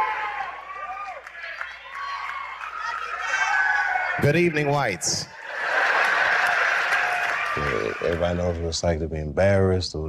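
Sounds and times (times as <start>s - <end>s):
audience applauding: 0.0s - 8.8s
man talking: 4.2s - 5.3s, 7.6s - 10.0s
audience laughing: 4.6s - 8.4s.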